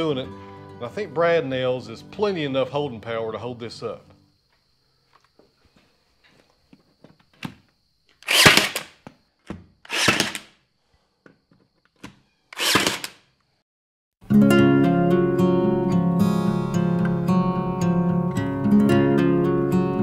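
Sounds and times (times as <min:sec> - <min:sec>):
light nail gun clicks: 0:08.2 - 0:08.9, 0:09.9 - 0:10.5, 0:12.6 - 0:13.2
nail gun firing into wood: 0:08.2 - 0:09.0, 0:09.9 - 0:10.6, 0:12.6 - 0:13.2.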